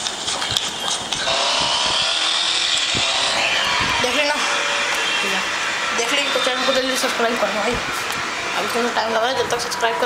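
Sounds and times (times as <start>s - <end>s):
small motor whirring: 1.2s - 8.2s.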